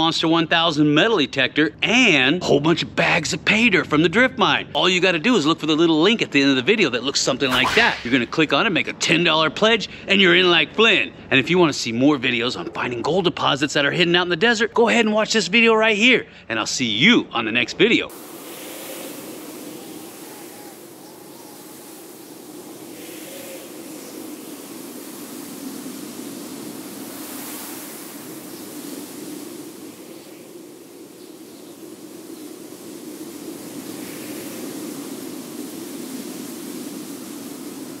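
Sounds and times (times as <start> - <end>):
wind-like rushing noise: 7.3 - 9.1, 18.1 - 38.0.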